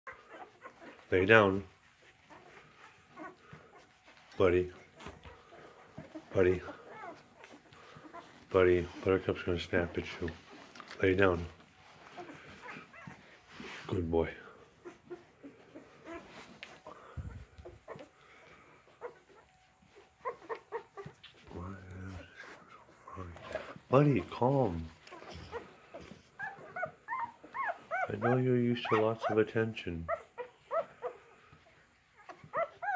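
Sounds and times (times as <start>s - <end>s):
faint dog whimper: 0.1s - 32.9s.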